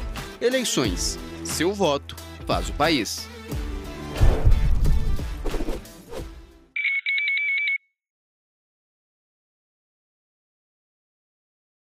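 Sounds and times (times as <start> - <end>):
music: 0.0 - 6.8.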